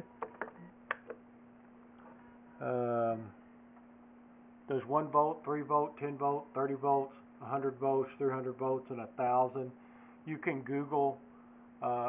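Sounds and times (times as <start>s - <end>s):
handling clicks and taps: 0.2s - 1.2s.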